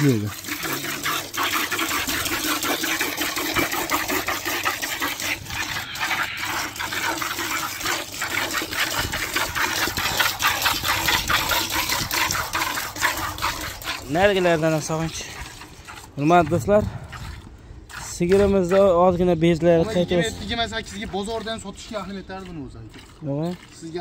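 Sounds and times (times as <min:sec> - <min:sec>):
milk squirting into bucket: 0:00.0 - 0:24.0.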